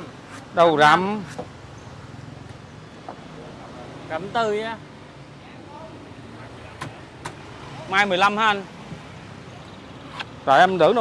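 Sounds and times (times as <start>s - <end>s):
low street noise: 0.0s - 11.0s
sharp knocks: 6.8s - 7.4s.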